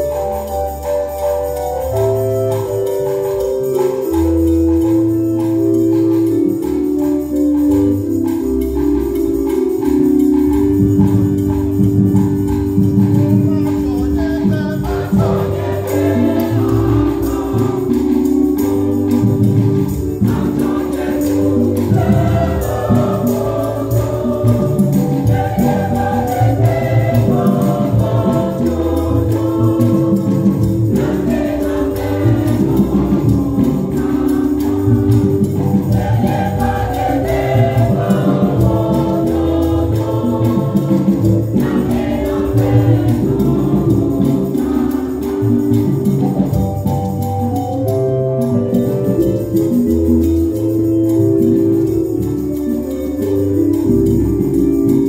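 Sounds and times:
electronic keyboard with bass line: 0:00.0 - 0:55.0
women's choir singing a hymn: 0:14.8 - 0:46.5.

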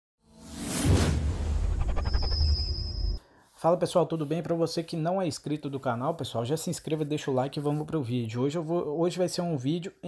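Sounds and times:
whoosh: 0:00.3 - 0:03.2
musical sting: 0:00.4 - 0:03.2
deep low rumble: 0:00.5 - 0:03.2.

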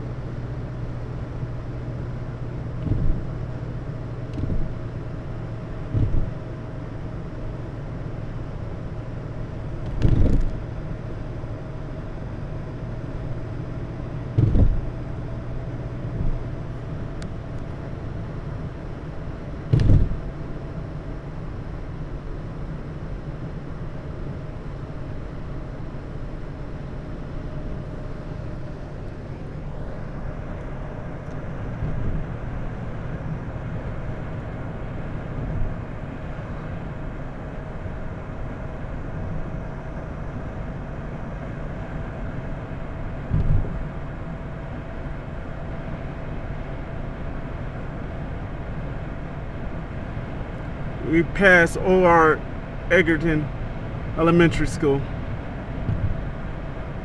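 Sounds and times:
road and engine noise in car: 0:00.0 - 0:57.0
brief thump: 0:02.8 - 0:03.2, 0:05.9 - 0:06.3, 0:14.4 - 0:14.8, 0:19.7 - 0:20.2, 0:43.3 - 0:43.7.

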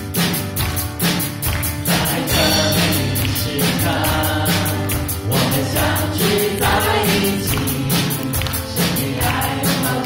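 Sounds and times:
drum kit with cymbals: 0:00.0 - 0:10.0
vocalists singing together: 0:01.8 - 0:10.0.

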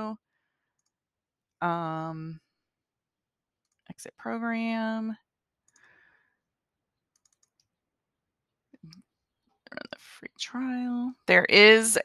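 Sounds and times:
computer mouse clicks: 0:00.8 - 0:01.0, 0:07.1 - 0:07.7.

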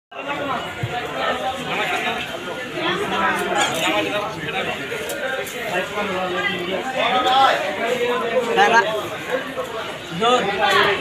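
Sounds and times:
people talking at once: 0:00.1 - 0:11.0.

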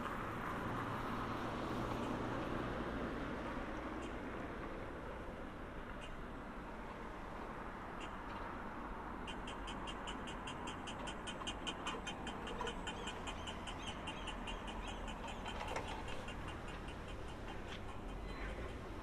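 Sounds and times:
low street hum: 0:00.0 - 0:19.0
crossing signal ticking rapidly: 0:09.3 - 0:19.0.

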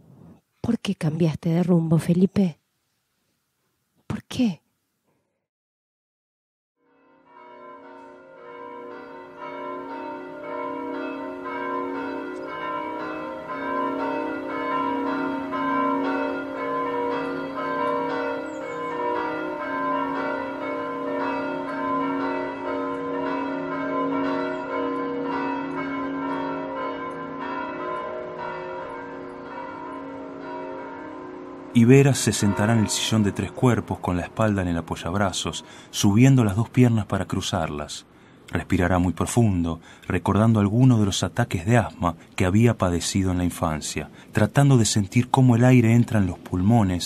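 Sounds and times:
bells ringing in a rapid peal: 0:07.0 - 0:34.6.

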